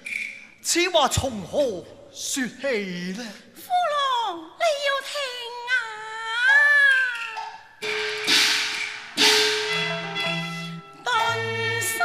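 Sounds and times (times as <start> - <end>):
percussion crashes: 7.8 - 10.9
sustained instrument notes: 9.2 - 12.0
wavering opera vocal: 11.0 - 12.0.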